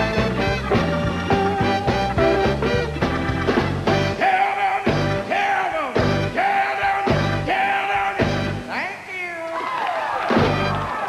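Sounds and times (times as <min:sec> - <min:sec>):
electric guitar bending notes: 0:00.0 - 0:04.3
bass and drums: 0:00.0 - 0:08.7, 0:10.3 - 0:11.0.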